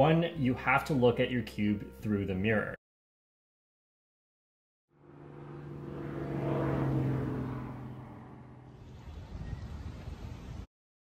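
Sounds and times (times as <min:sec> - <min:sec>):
airplane engine drone: 0:04.9 - 0:10.6.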